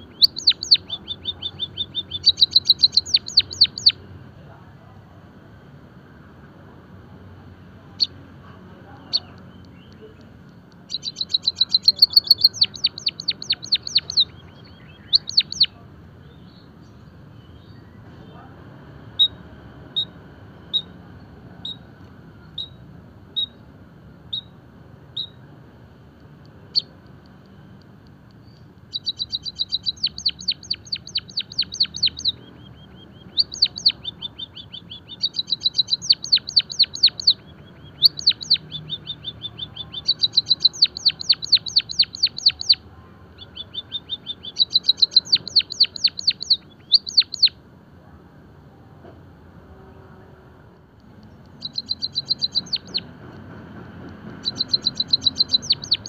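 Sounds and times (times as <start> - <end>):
bird high chirps: 0.0 - 4.0, 8.0 - 8.2, 8.9 - 18.5, 21.6 - 22.8, 23.4 - 23.6, 24.3 - 24.6, 25.2 - 25.4, 26.7 - 27.0, 28.3 - 47.6, 51.0 - 56.0.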